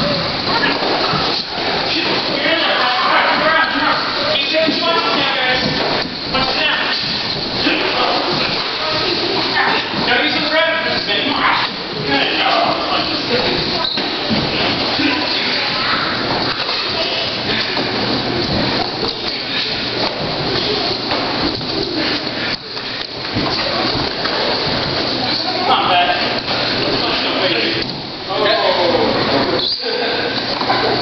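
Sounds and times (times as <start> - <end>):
feet moving on wooden floor: 0.0 - 28.3
indistinct voices: 0.0 - 31.0.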